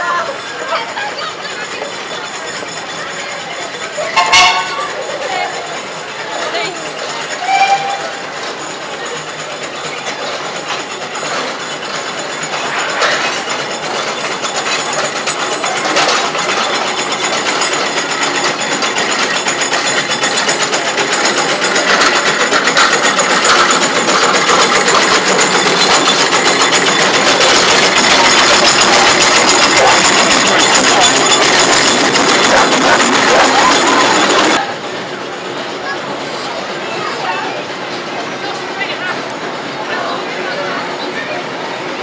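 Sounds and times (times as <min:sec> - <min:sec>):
steam road roller clattering: 0:00.0 - 0:42.0.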